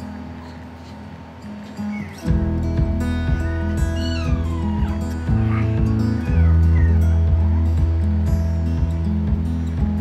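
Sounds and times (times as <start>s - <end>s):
background music: 2.2s - 10.0s
puppy whining: 3.4s - 7.6s.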